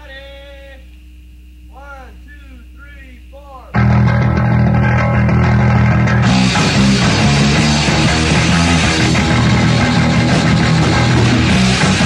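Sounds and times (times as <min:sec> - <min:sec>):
distorted guitar and bass chord: 0:03.7 - 0:12.0.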